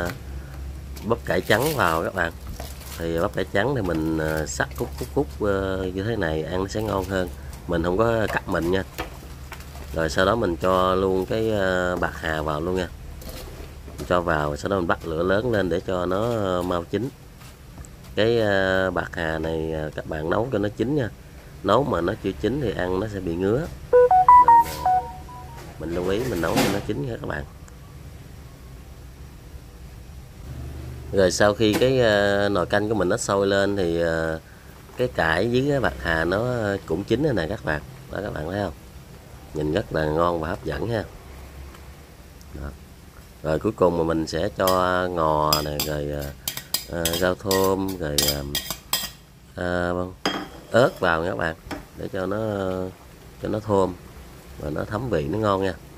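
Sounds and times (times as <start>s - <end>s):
electronic chime beeps: 24.0s - 25.6s
utensil clinking against cookware: 45.5s - 49.2s.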